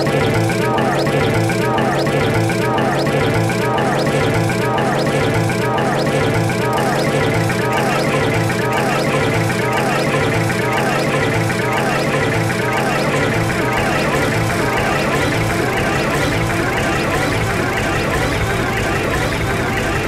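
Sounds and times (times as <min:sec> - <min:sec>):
processed cartoon music and voices: 0:00.0 - 0:20.0
swooping pitch glides: 0:00.0 - 0:20.0.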